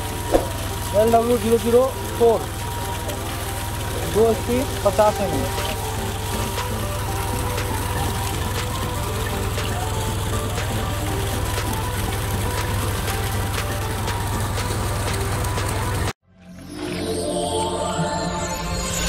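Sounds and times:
water gushing from pipe: 0:00.0 - 0:16.2.

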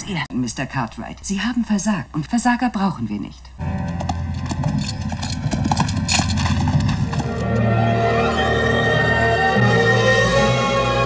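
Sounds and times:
horse hoofbeats: 0:03.6 - 0:08.5
low sustained music score: 0:03.6 - 0:11.0.

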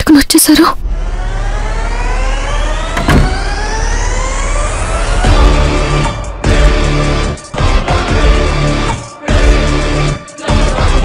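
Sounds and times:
sharp hit: 0:03.0 - 0:03.9.

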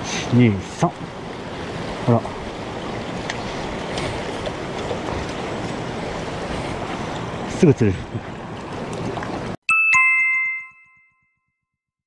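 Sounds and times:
two-note chime: 0:09.7 - 0:11.5.

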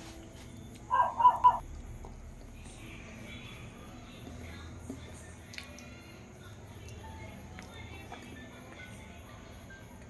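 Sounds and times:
animal call short notes: 0:00.9 - 0:01.6.

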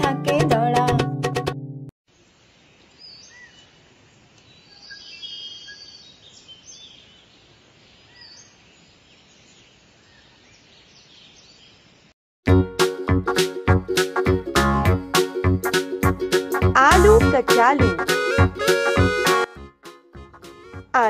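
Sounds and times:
bird chirps: 0:02.8 - 0:03.8, 0:04.4 - 0:11.9.

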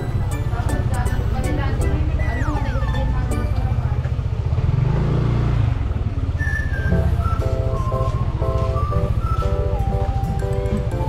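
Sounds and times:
music: 0:00.0 - 0:04.2, 0:06.5 - 0:11.0
motor scooter engine running: 0:00.0 - 0:11.0.

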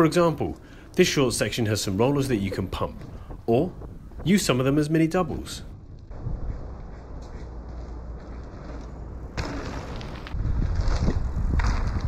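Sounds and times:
wind buffeting microphone: 0:01.2 - 0:12.0
bike tyre roar on dirt trail: 0:05.8 - 0:12.0.

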